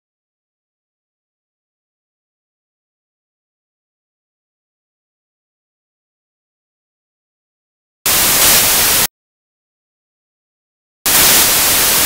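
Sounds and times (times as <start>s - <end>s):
loud static hiss: 8.1s - 9.1s, 11.1s - 12.0s.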